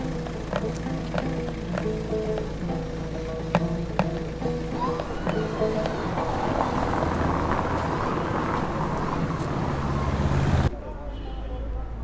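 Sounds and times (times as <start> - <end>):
vehicle engine running close: 0.0 - 10.7
city street traffic: 0.0 - 12.0
people's voices: 0.0 - 12.0.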